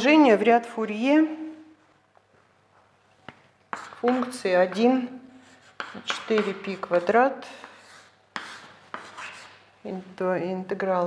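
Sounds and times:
chalk writing on a blackboard: 3.7s - 9.7s.

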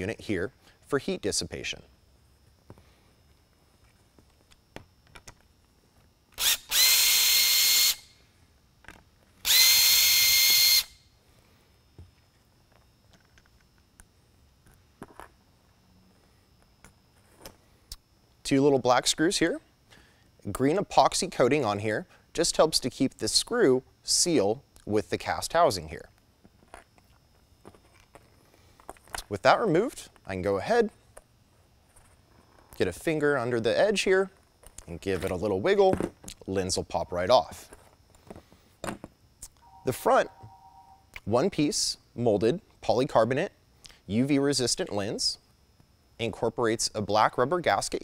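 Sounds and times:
power screwdriver whining: 6.4s - 8.1s, 9.4s - 11.0s.

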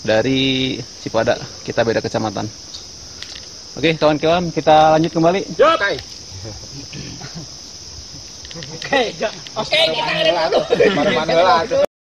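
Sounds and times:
insects droning: 0.0s - 11.9s.

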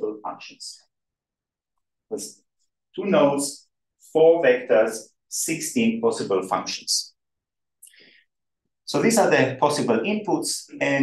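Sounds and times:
man speaking: 0.0s - 0.9s, 2.0s - 7.2s, 8.9s - 11.0s.

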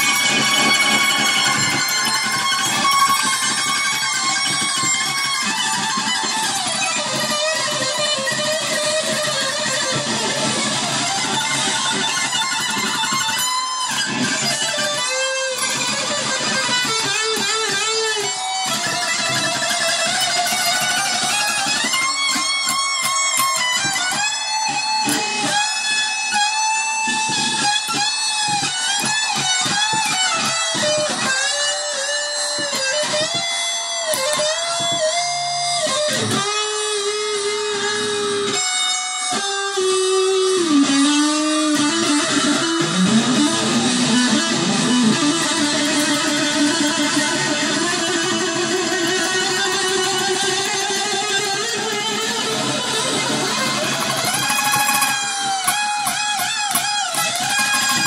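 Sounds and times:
electric guitar through amplifier: 0.0s - 58.0s.

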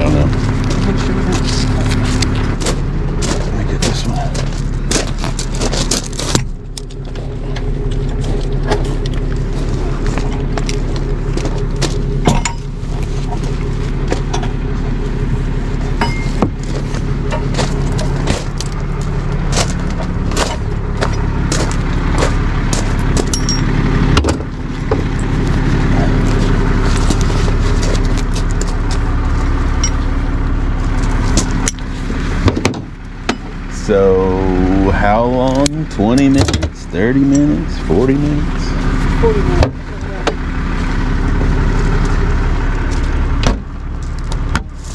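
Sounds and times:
truck engine idling: 0.0s - 44.9s
metal chains clinking: 23.2s - 23.8s.

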